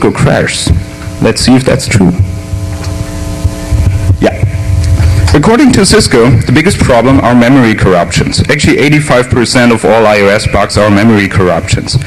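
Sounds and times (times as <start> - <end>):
public address system hum: 0.0 - 12.0.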